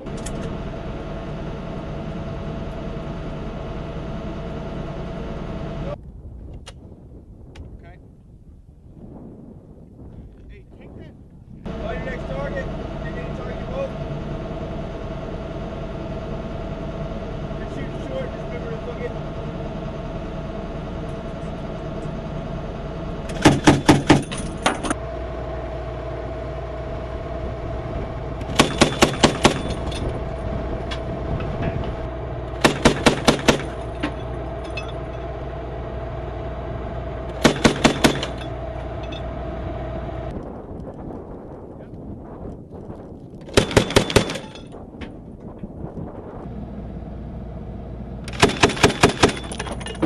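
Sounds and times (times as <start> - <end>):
vehicle engine running: 0.0 - 6.0, 11.6 - 50.0
automatic grenade launcher bursts: 28.5 - 29.9, 32.5 - 34.0, 37.3 - 38.5, 43.5 - 44.6, 48.3 - 49.8.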